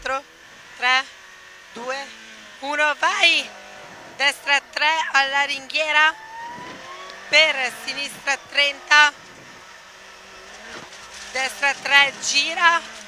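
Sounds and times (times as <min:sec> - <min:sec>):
quiet car engine: 0:00.0 - 0:13.0
person speaking in car cabin: 0:00.8 - 0:01.1, 0:01.8 - 0:03.5, 0:04.2 - 0:06.2, 0:07.3 - 0:09.1, 0:11.4 - 0:13.0
thin rising tone: 0:03.3 - 0:10.6.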